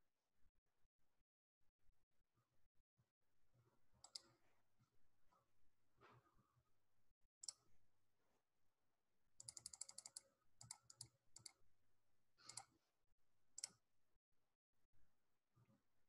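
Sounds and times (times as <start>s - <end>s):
computer mouse and keyboard clicks: 4.0s - 4.4s, 7.4s - 7.6s, 9.4s - 11.6s, 12.4s - 12.7s, 13.6s - 13.8s.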